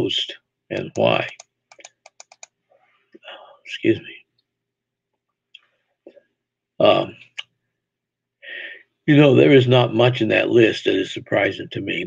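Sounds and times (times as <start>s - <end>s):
faint clicks: 1.2s - 3.2s.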